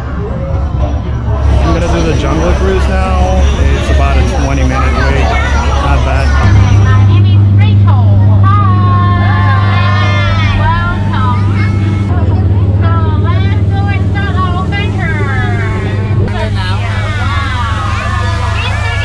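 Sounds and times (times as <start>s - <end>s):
boat motor humming: 0.0s - 19.0s
person talking over loudspeaker: 1.4s - 7.9s.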